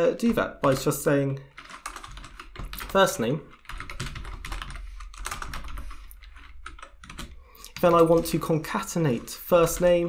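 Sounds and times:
typing on keyboard: 0.2 - 10.0.

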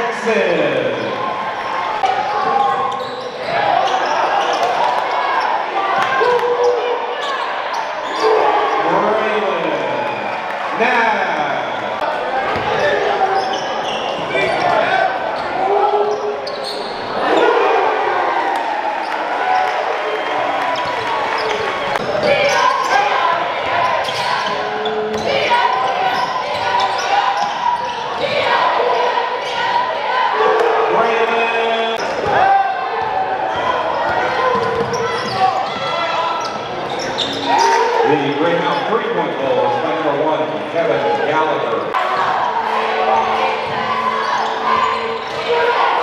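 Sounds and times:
hubbub of voices: 0.0 - 46.0.

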